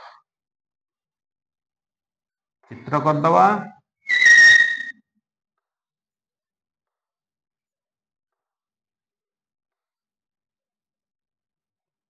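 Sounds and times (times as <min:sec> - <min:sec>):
chalk squeaking on chalkboard: 0:04.1 - 0:05.0.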